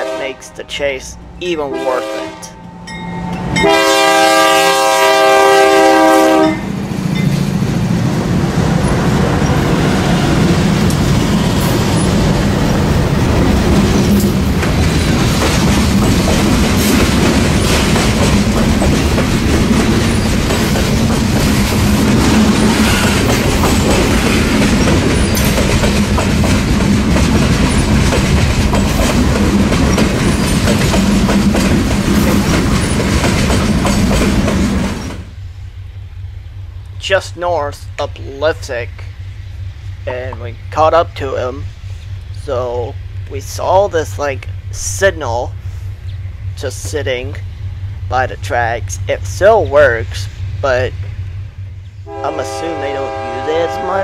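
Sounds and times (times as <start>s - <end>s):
locomotive air horn: 0.0s - 0.6s, 1.7s - 2.8s, 3.6s - 6.7s, 52.1s - 54.0s
train wheels clattering: 10.7s - 35.3s.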